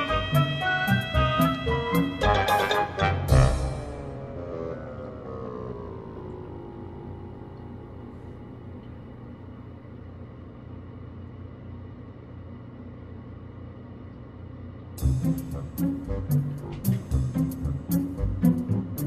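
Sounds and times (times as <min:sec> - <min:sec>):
quiet drone music: 0:00.0 - 0:10.5, 0:15.0 - 0:19.0.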